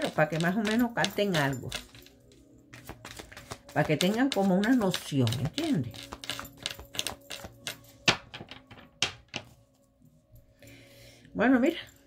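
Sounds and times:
cards being shuffled: 0.0 - 9.5
faint background music: 0.0 - 12.0.

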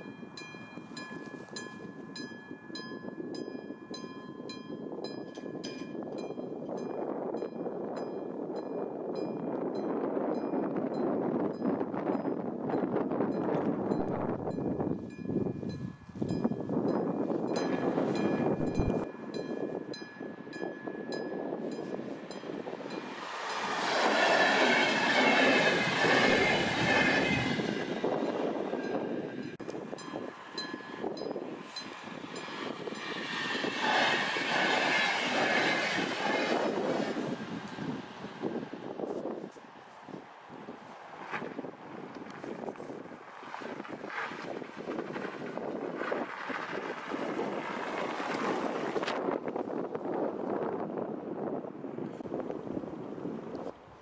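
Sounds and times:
crossing warning bell ringing: 0.0 - 38.5
passing train rumble and clatter: 0.0 - 54.0.

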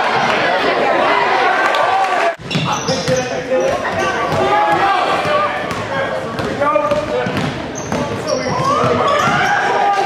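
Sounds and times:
voices in gym: 0.0 - 10.0
high shoe squeaks: 2.4 - 4.3, 7.7 - 9.6
basketball bouncing on wood floor: 3.9 - 9.5.

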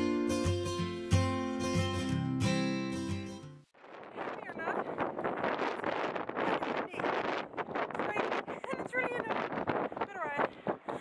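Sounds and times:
wind gusting on microphone: 3.8 - 11.0
woman's voice: 4.3 - 4.9, 8.0 - 10.5.

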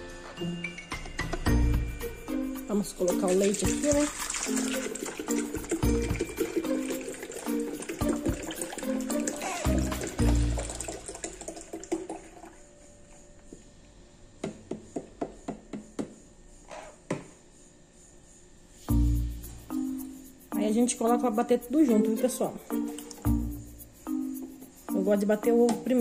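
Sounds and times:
background music with a beat: 0.0 - 10.8, 18.8 - 26.0
milk pouring into blender jar: 3.1 - 12.6.

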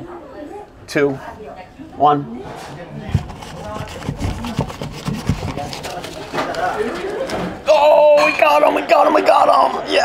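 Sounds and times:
paper knocking and scuffing on wall: 3.0 - 7.6.

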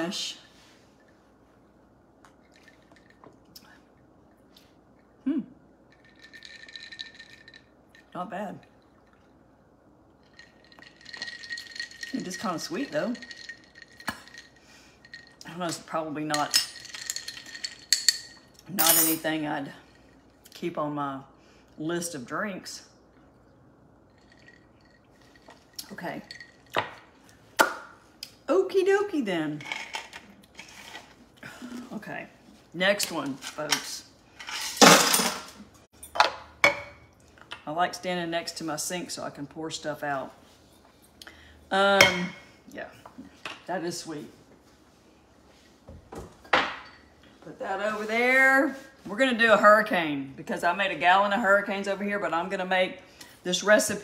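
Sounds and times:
ice cubes clinking in a glass: 6.0 - 8.1, 10.2 - 15.4.

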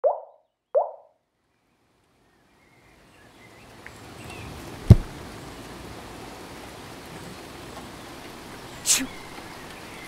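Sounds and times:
water drop plops: 0.0 - 1.1.

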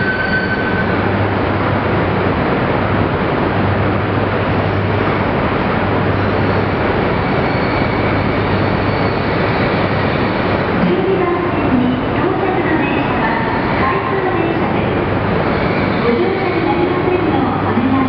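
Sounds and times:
train rolling slowly: 0.0 - 18.0.

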